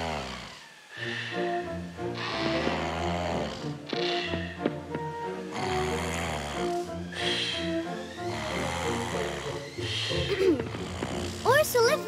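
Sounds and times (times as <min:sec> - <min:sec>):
cartoon bear snoring: 0:00.0 - 0:12.0
gentle background music: 0:00.0 - 0:12.0.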